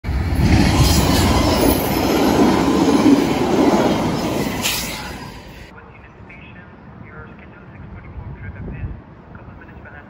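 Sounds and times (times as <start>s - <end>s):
train cars rolling on rails: 0.1s - 5.7s.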